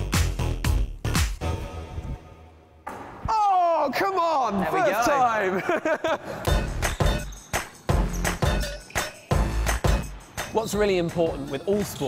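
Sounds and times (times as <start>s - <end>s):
background music: 0.0s - 2.8s, 4.6s - 12.0s.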